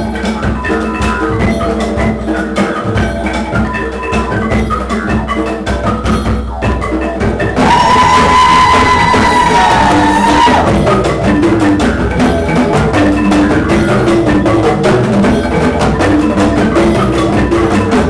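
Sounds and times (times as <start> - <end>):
bamboo percussion ensemble: 0.0 - 18.0.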